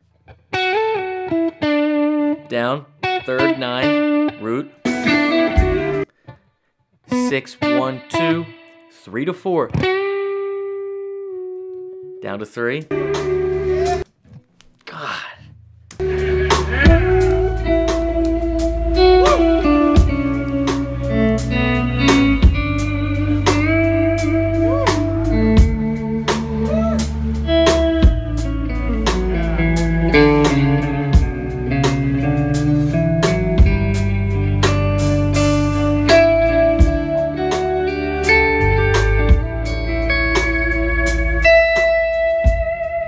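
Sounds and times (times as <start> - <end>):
lead electric guitar bending notes: 0.4 - 6.0, 12.9 - 14.0, 16.0 - 43.0
bass and drums: 15.9 - 43.0.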